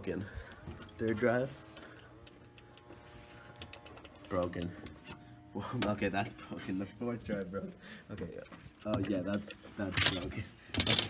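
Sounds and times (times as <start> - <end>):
low room hum: 0.0 - 10.7.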